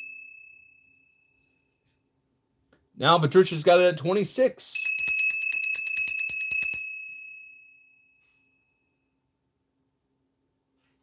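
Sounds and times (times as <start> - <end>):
small metal bell ringing: 0.0 - 1.5, 4.8 - 9.0.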